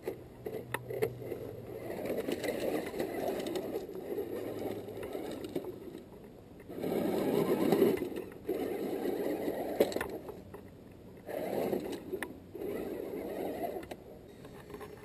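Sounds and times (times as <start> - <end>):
toy truck motor whirring: 0.0 - 15.0.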